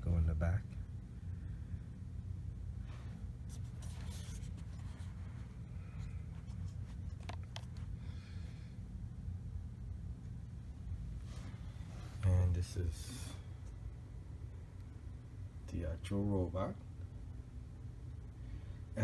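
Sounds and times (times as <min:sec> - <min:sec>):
steady low hum: 0:00.0 - 0:19.0
rustling and scraping: 0:02.8 - 0:08.0, 0:11.1 - 0:12.3.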